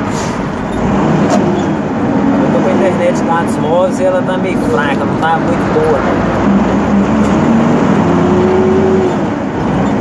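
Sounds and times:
road rumble: 0.0 - 10.0
truck engine running: 0.0 - 10.0.

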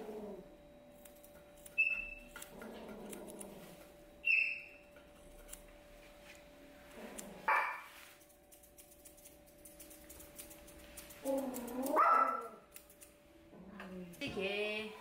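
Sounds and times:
scissors snipping: 1.0 - 3.5, 5.0 - 5.7, 8.2 - 13.2.

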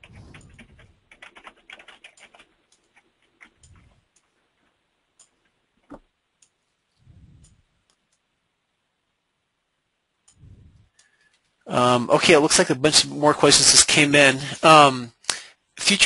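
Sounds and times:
typing on computer keyboard: 0.0 - 4.2.

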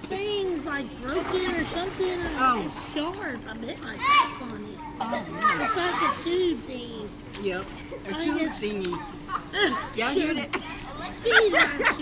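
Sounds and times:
steady low hum: 0.0 - 12.0
children calling and shouting: 3.8 - 6.7, 7.8 - 12.0.

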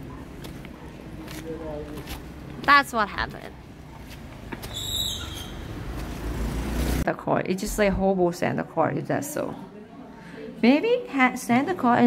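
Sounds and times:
vehicle passing rumble: 4.2 - 7.0.

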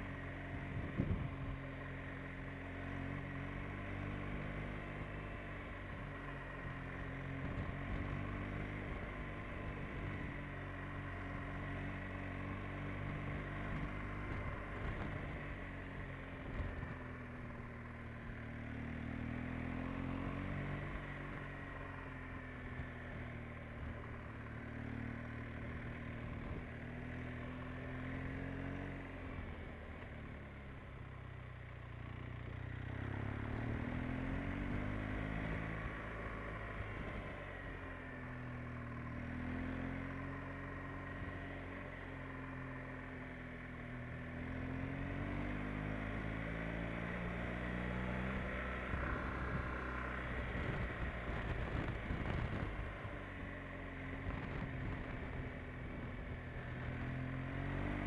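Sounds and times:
motorcycle engine revving: 0.0 - 31.0, 32.4 - 58.0.

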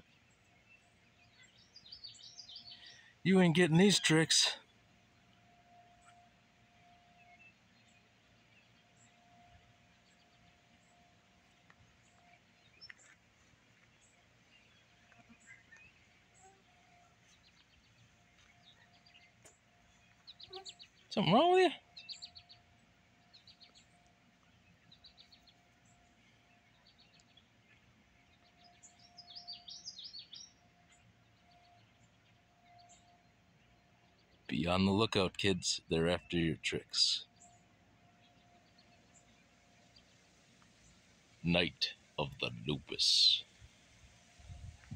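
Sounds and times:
songbird chirping: 0.0 - 44.9.

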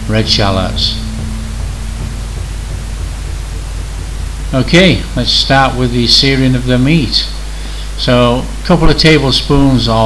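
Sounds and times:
soft background music: 0.0 - 7.4
steady hiss: 0.0 - 10.0.

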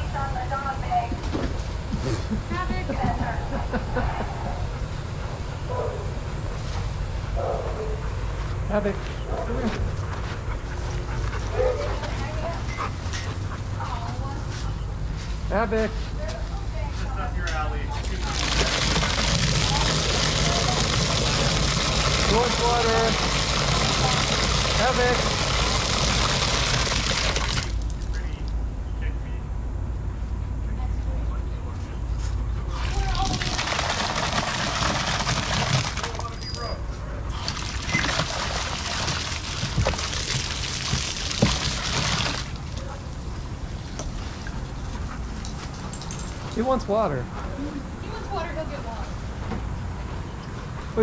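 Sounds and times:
garden hose spraying water: 18.0 - 28.2, 32.7 - 36.4, 37.3 - 44.9.

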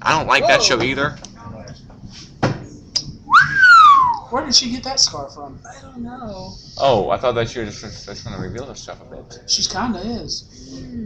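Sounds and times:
hand whistle swooping note: 3.3 - 4.3.

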